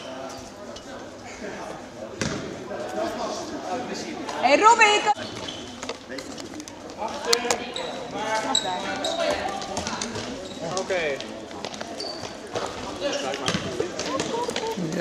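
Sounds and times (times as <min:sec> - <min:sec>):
ball bouncing on floor: 0:11.6 - 0:14.8.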